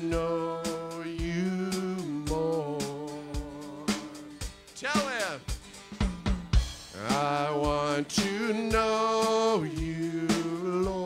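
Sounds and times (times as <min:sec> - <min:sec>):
drum kit playing: 0:00.0 - 0:11.0.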